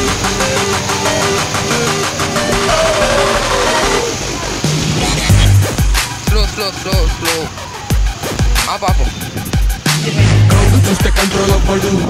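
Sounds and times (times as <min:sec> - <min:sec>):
background music with fast beat: 0:00.0 - 0:12.0.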